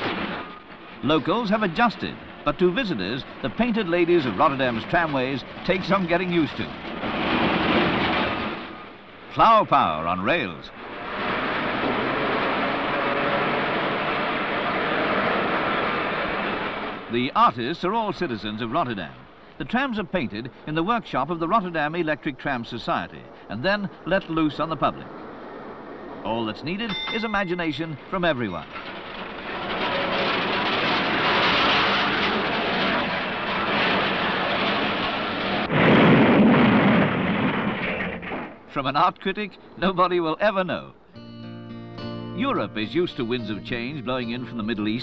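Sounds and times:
electric tram on street rails: 0.0s - 41.1s, 42.4s - 45.0s.

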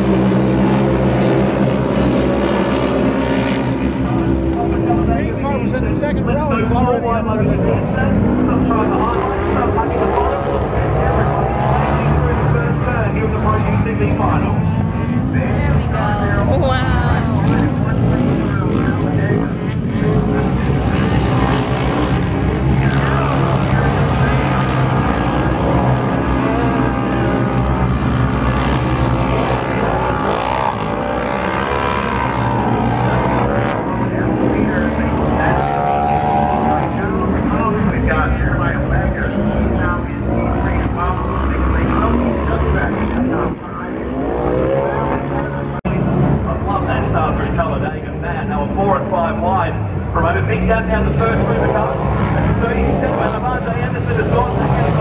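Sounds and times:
racing engines running hard: 0.0s - 55.0s.

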